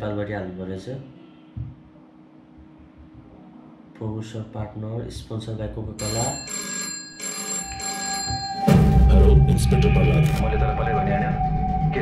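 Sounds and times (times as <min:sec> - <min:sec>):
telephone ringing: 0:06.0 - 0:09.1.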